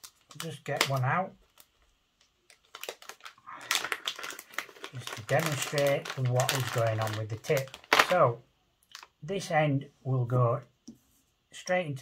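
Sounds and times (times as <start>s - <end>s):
plastic packet crinkling: 0.0s - 9.2s.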